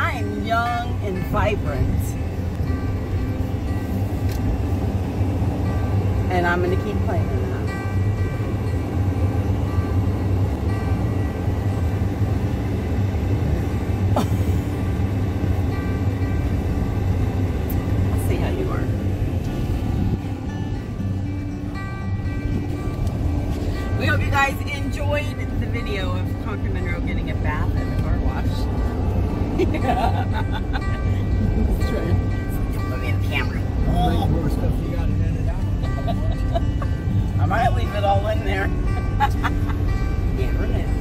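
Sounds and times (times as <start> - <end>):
voice: 0.0 - 2.1, 24.0 - 28.6, 32.9 - 35.8, 40.4 - 40.9
music playing: 0.0 - 41.0
road and engine rumble in cabin: 0.0 - 41.0.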